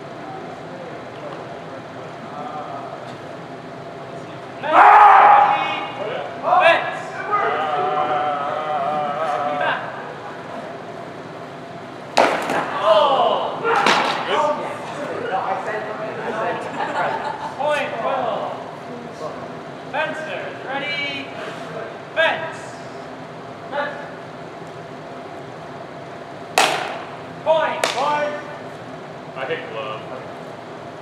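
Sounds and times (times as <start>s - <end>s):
voices calling out: 0.0s - 25.3s.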